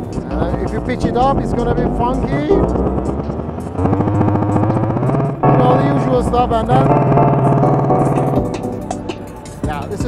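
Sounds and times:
electronic beat: 1.1s - 9.8s
buzzy rapidly repeating tone: 2.5s - 8.8s.

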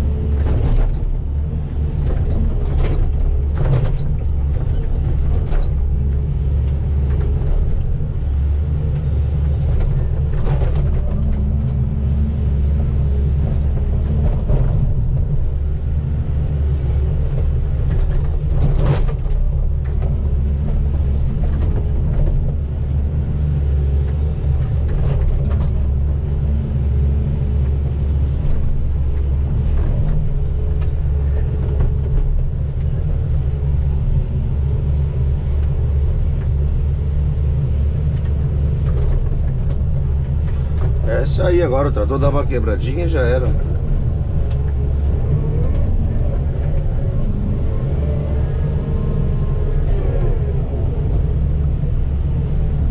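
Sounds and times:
excavator engine droning: 0.0s - 52.9s.

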